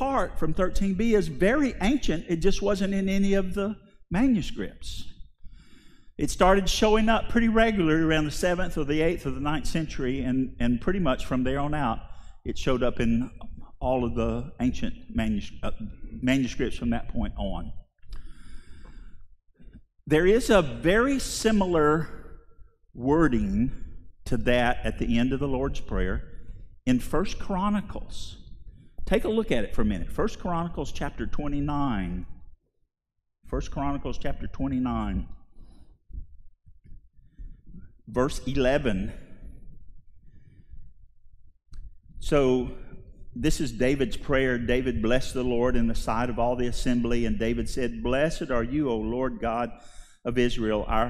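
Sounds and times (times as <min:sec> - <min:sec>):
man breathing softly: 0:05.4 - 0:06.2, 0:18.1 - 0:19.8, 0:35.5 - 0:38.0, 0:39.2 - 0:41.5, 0:49.8 - 0:50.2.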